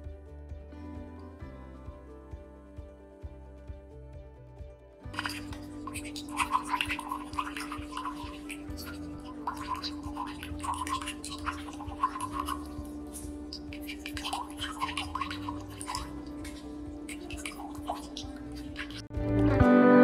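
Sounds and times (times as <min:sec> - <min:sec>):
soft background music: 0:00.0 - 0:20.0
tea pouring into glass cup: 0:05.0 - 0:19.1.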